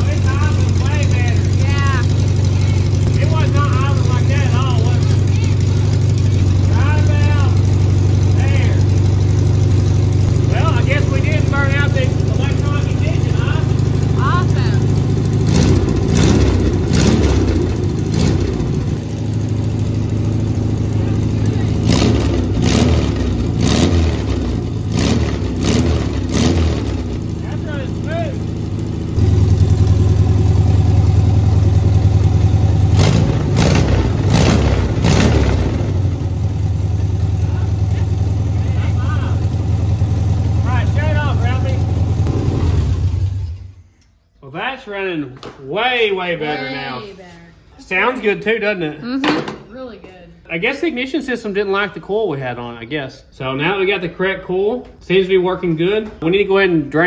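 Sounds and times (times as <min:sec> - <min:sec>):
car engine idling and revving: 0:00.0 - 0:44.2.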